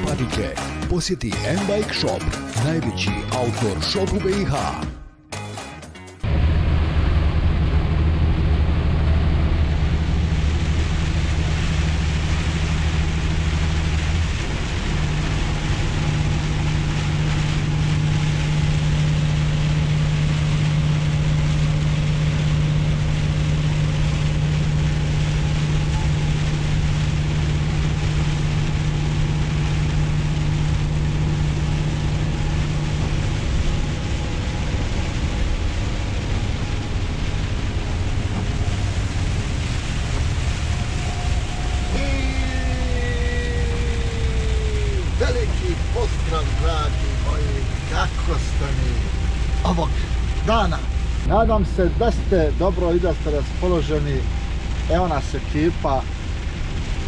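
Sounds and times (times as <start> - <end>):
tyres on wet road: 0.0 - 4.8, 6.2 - 57.0
lorry engine drone: 0.0 - 57.0.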